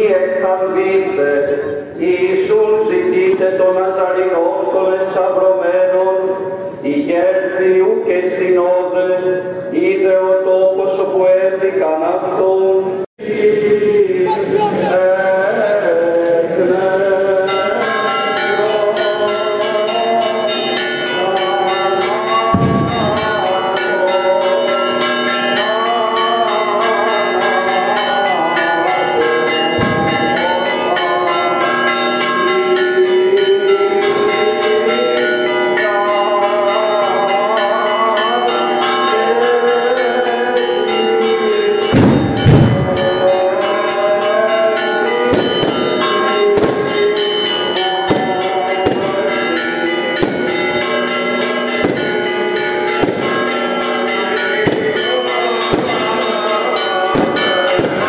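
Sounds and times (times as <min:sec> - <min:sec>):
church bells pealing: 0:00.0 - 0:13.0, 0:14.2 - 0:58.0
firework bangs: 0:41.9 - 0:43.2, 0:45.3 - 0:47.0, 0:48.1 - 0:49.3, 0:51.8 - 0:52.2, 0:53.0 - 0:53.6, 0:54.6 - 0:55.1, 0:55.7 - 0:56.2, 0:57.2 - 0:58.0.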